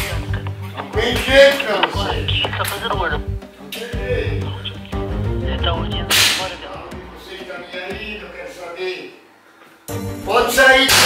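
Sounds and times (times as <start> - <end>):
walkie-talkie static hiss: 0.1 - 3.5, 4.3 - 6.8.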